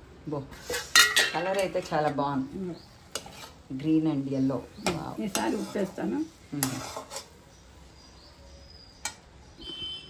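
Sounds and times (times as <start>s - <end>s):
spoon stirring vegetables: 0.5s - 8.0s
woman speaking: 3.7s - 6.8s.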